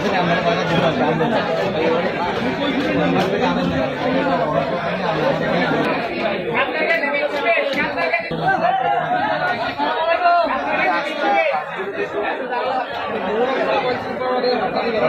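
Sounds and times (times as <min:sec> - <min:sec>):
people chattering: 0:00.0 - 0:15.0.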